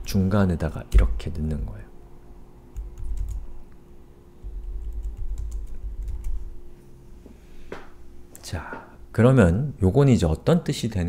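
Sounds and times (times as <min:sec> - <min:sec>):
computer keyboard typing: 0:02.8 - 0:03.4, 0:04.5 - 0:06.4.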